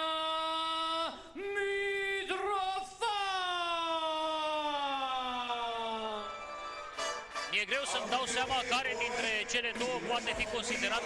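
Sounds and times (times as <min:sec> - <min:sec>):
ring announcer over microphone: 0:07.3 - 0:11.0.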